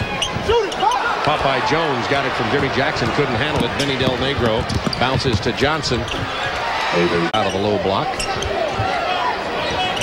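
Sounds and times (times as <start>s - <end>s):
arena crowd murmur: 0.0s - 10.0s
basketball bouncing on hardwood: 3.0s - 5.5s.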